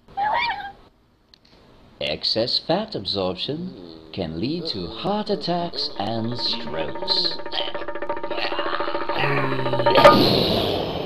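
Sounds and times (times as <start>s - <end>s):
cartoon animal cry: 0.1s - 0.8s.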